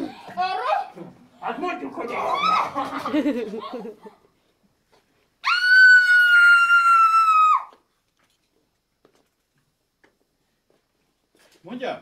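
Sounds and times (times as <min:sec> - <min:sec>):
long high-pitched scream: 0:05.4 - 0:07.8.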